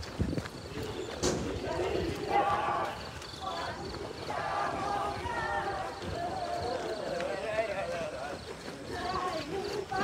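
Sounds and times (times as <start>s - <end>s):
runners' footsteps on pavement: 0.0s - 10.0s
people chatting: 0.8s - 10.0s.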